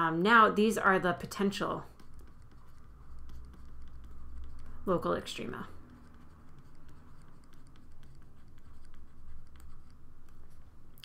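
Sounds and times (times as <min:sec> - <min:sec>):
stylus scratching on tablet screen: 0:00.0 - 0:11.0.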